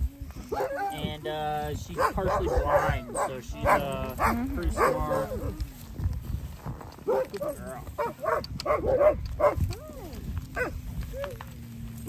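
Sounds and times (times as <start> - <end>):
sled dogs yelping and whining: 0.2 - 1.2, 1.8 - 5.8, 6.8 - 11.7.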